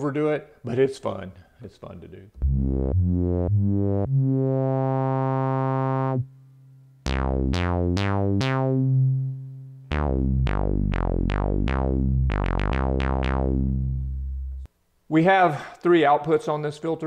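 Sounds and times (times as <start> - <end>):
low synthesizer notes: 2.4 - 6.3, 7.0 - 14.7.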